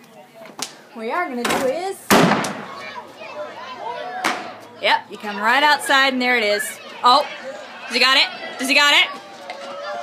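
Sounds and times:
people talking outside: 0.0s - 10.0s
firework bang: 2.1s - 2.8s.

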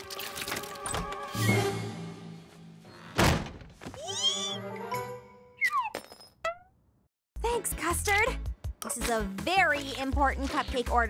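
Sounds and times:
background music: 0.0s - 2.8s, 4.2s - 5.6s, 7.4s - 11.0s
loud cartoon thunk: 3.2s - 3.8s.

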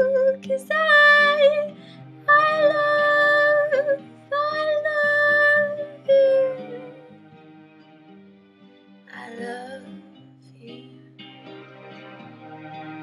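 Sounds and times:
soft backing instrumental track: 0.0s - 13.0s.

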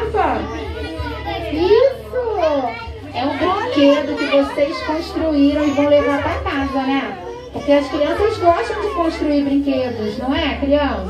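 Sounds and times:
young children calling and chattering: 0.0s - 11.0s.

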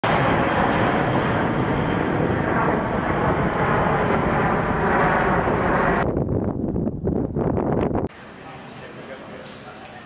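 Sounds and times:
jet roar flying overhead: 0.0s - 9.1s.

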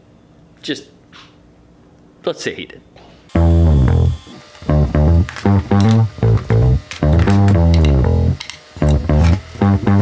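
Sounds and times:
bass and guitar music: 3.3s - 10.0s.

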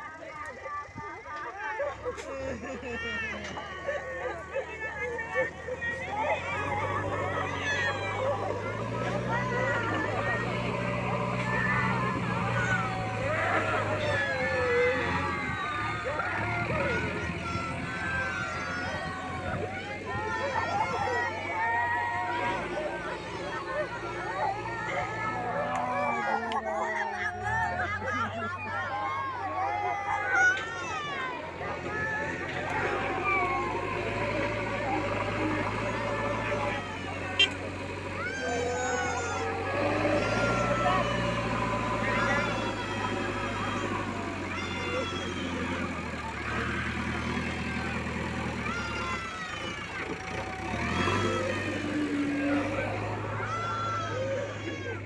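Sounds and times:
diesel engine running: 0.0s - 55.0s
people's voices: 0.0s - 55.0s.

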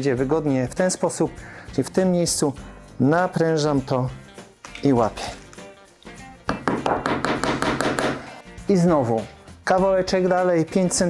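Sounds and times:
background music: 0.0s - 11.0s
hammer tapping tack: 6.5s - 8.2s.

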